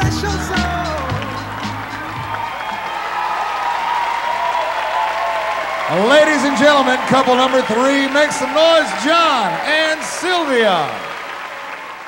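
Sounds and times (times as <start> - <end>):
pop-soul song: 0.0 - 3.1
audience clapping and cheering: 0.0 - 12.0.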